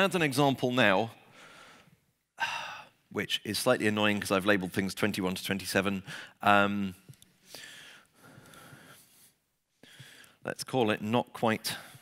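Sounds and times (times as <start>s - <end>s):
man speaking: 0.0s - 1.2s, 2.5s - 7.1s, 10.4s - 12.0s
man breathing in: 1.3s - 3.0s, 6.1s - 6.4s, 7.4s - 10.4s
man exhaling: 2.4s - 3.0s.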